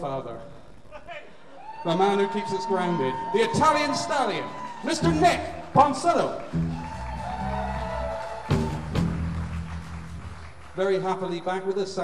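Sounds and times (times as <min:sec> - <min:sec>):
electric bass guitar: 0:06.5 - 0:10.7.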